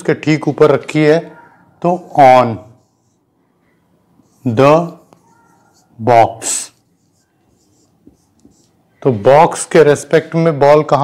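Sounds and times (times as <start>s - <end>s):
marker pen scratching on whiteboard: 1.4s - 9.8s.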